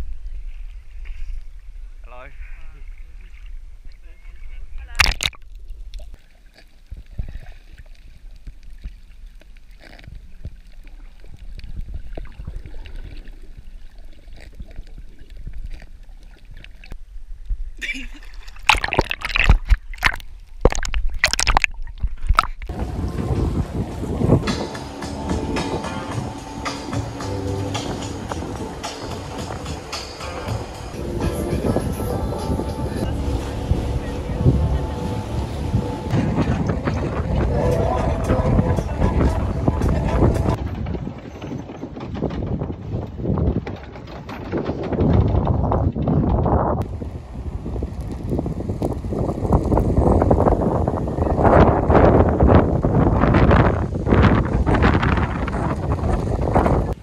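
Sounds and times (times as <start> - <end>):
person laughing: 17.8 - 18.4
dull underwater sound: 18.4 - 41.2
background music: 22.7 - 40.6.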